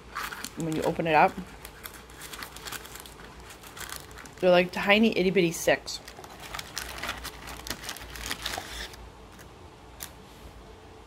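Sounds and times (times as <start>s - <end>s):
snack wrapper crinkling: 0.0s - 4.5s, 6.0s - 10.1s.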